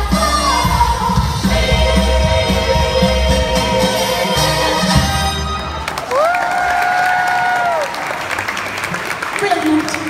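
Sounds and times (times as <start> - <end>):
live song music: 0.0 - 10.0
crowd cheering and applause: 4.4 - 10.0.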